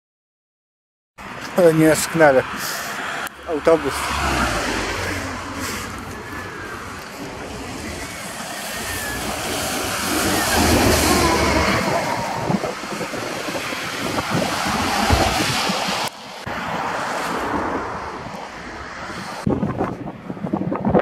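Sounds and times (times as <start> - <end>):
car passing on wet street: 1.2 - 19.5
bus engine rumble and tyre noise: 1.2 - 21.0.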